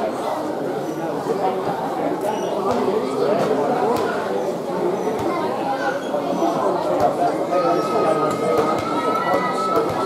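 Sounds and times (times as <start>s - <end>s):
spectators chatting: 0.0s - 10.0s.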